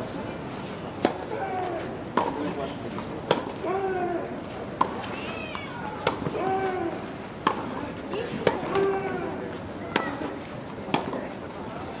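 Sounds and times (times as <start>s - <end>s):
tennis ball racket hits: 2.2s - 3.6s, 7.4s - 9.1s, 10.9s - 11.3s.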